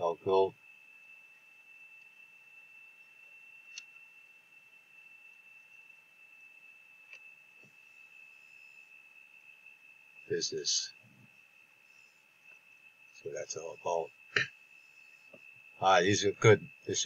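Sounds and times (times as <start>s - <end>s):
high-pitched whine: 13.2s - 14.5s, 15.8s - 17.0s.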